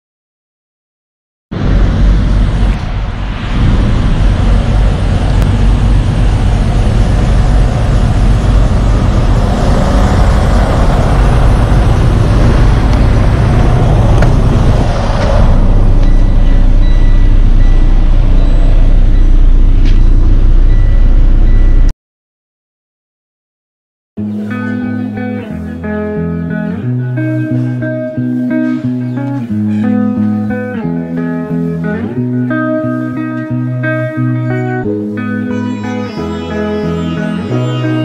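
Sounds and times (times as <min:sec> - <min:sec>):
diesel engine rumble: 0:01.5 - 0:21.9
short high beeps: 0:15.6 - 0:21.9.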